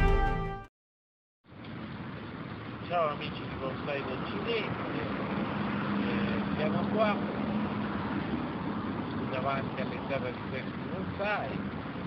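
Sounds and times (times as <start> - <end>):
rushing outdoor background noise: 1.5 - 12.0.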